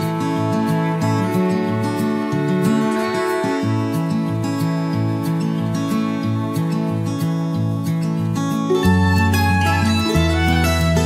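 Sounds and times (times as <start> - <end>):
lounge music with acoustic guitar: 0.0 - 11.0.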